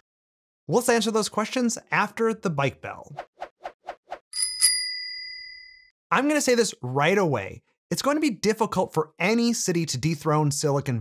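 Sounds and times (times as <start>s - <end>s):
bicycle bell ringing: 4.4s - 5.9s.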